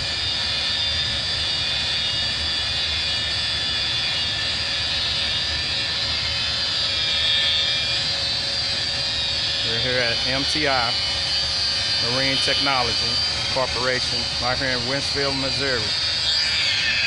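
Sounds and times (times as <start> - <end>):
rotary polisher motor whine: 0.0 - 17.0.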